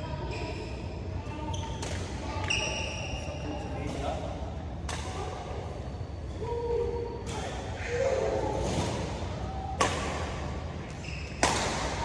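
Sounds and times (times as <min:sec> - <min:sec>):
racket striking shuttlecock: 0:09.8 - 0:12.0
shoe squeak on court floor: 0:11.0 - 0:11.4.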